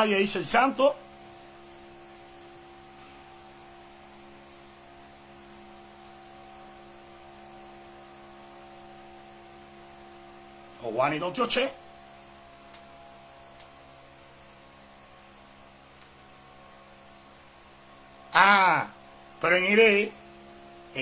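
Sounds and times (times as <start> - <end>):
electrical hum: 0.0 - 21.0.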